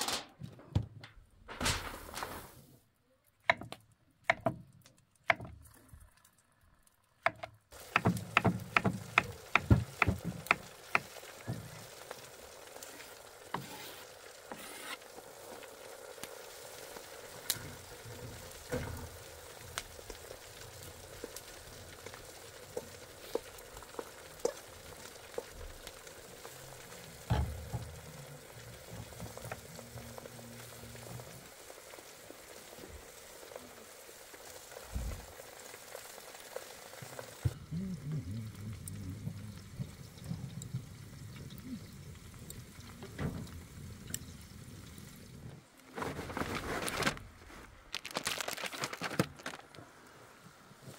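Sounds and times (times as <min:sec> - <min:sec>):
knife chopping on wooden board: 0:03.5 - 0:04.6, 0:07.3 - 0:10.6
mushrooms sizzling in frying pan: 0:07.7 - 0:37.6.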